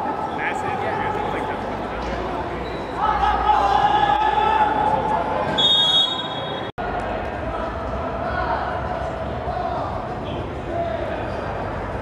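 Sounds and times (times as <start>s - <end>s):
players' voices echoing: 0.0s - 5.6s
referee's whistle: 5.6s - 6.7s.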